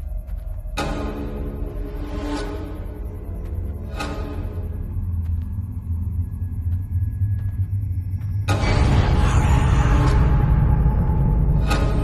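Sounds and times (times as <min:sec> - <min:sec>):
low rumbling drone: 0:00.0 - 0:12.0.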